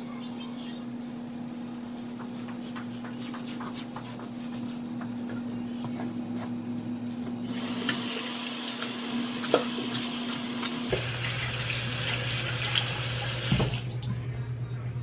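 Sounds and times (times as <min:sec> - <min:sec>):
sink tap running: 0:07.5 - 0:14.0.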